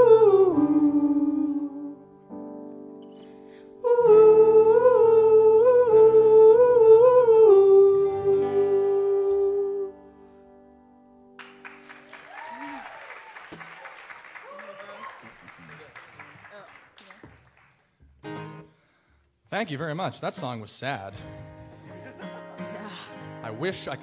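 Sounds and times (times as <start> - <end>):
person singing wordless line: 0.0 - 2.1, 3.8 - 10.1
acoustic guitar chords: 0.0 - 11.9, 18.0 - 18.8, 20.0 - 24.0
audience applause: 11.4 - 17.9.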